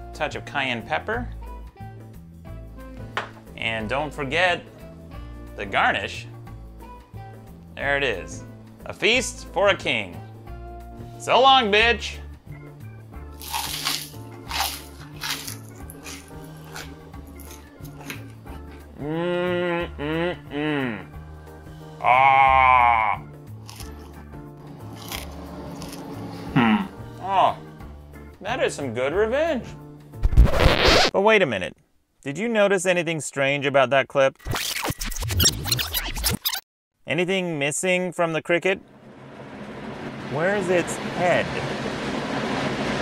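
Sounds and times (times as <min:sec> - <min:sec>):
background music: 0:00.0 - 0:30.4
crunching and chewing: 0:13.4 - 0:18.8, 0:23.6 - 0:24.2, 0:24.8 - 0:26.3
squeaky sped-up rewind audio: 0:34.4 - 0:36.6.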